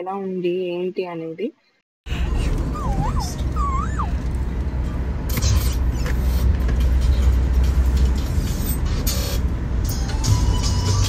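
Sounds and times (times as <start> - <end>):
road and engine rumble: 2.0 - 11.0.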